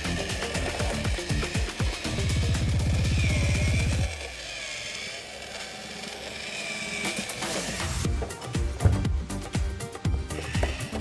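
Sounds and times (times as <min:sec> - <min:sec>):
electronic music with low beat: 0:00.0 - 0:04.1, 0:08.0 - 0:11.0.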